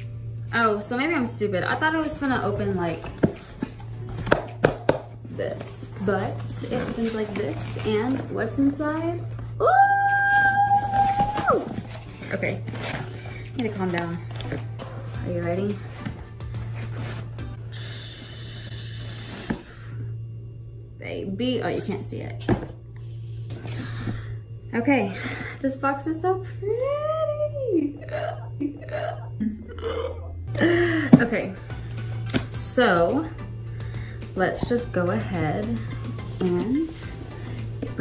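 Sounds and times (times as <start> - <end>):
background music: 0.0 - 38.0
cardboard box taps and knocks: 4.2 - 5.2
cardboard box scraping: 6.0 - 9.2, 10.8 - 14.6, 15.2 - 17.4.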